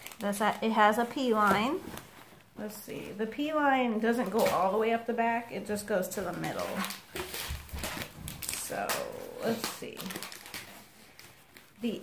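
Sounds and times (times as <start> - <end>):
diaper sheet rustling: 0.0 - 12.0.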